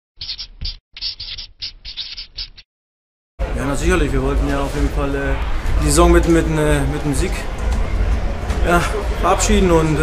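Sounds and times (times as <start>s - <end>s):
marker pen scratching: 0.2s - 2.6s.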